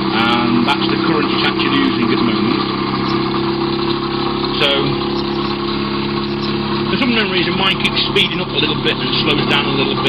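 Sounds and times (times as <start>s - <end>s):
pulse motor humming: 0.0s - 10.0s.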